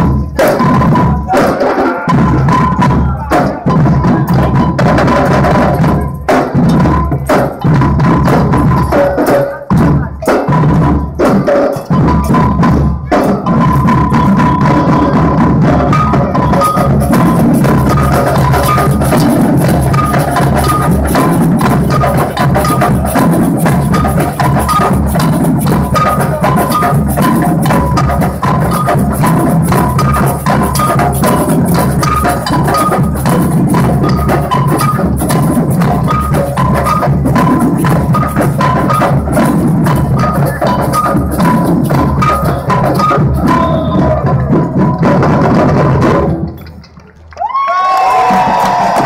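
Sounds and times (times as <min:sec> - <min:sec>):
drum band playing: 0:00.0 - 0:49.0.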